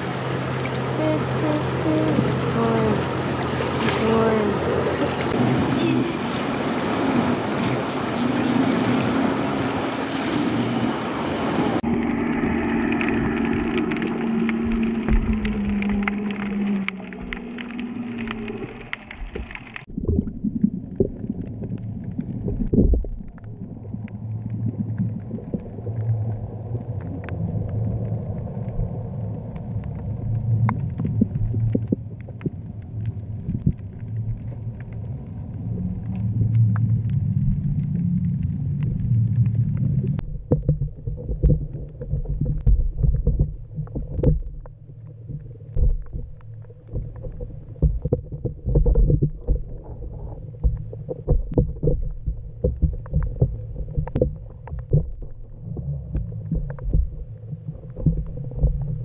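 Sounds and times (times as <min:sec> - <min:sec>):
low hum: 0:00.0 - 0:59.0
muffled underwater rumble: 0:00.0 - 0:59.0
underwater clicks and pops: 0:12.9 - 0:59.0.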